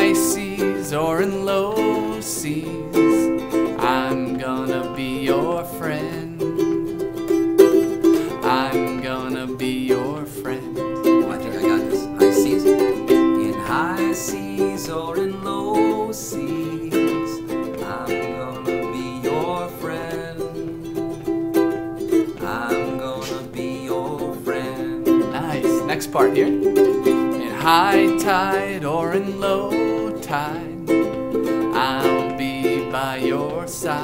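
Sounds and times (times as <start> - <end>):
man singing: 0.0 - 7.1, 7.9 - 34.0
ukulele strumming chords: 0.0 - 34.0.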